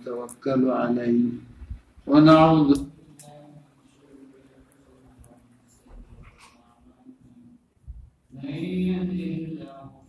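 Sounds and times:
man chanting: 0:08.3 - 0:10.0.

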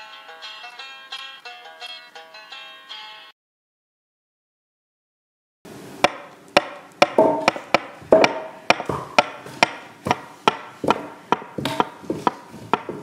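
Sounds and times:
tool striking wood: 0:06.0 - 0:13.0.

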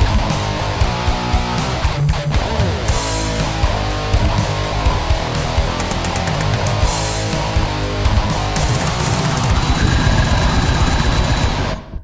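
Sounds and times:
heavily distorted guitars: 0:00.0 - 0:12.0
rapid blast-beat drumming: 0:02.9 - 0:12.0.

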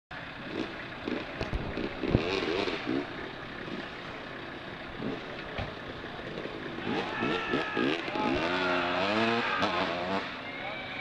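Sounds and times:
car engine revving: 0:00.2 - 0:10.4.

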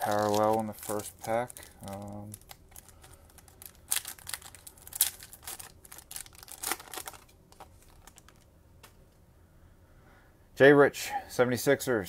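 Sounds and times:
foil wrapper crinkling: 0:00.0 - 0:08.5.

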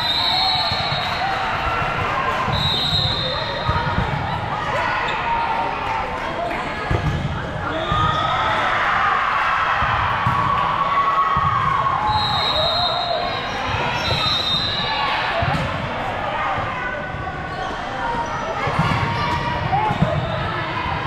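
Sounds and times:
many voices echoing: 0:00.0 - 0:21.0.

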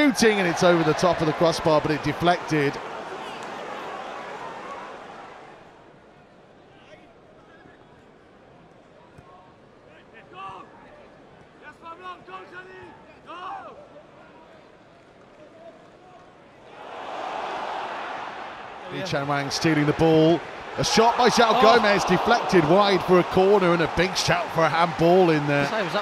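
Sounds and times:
crowd shouts: 0:00.0 - 0:05.6, 0:16.7 - 0:26.0
stadium crowd murmur: 0:00.0 - 0:26.0.

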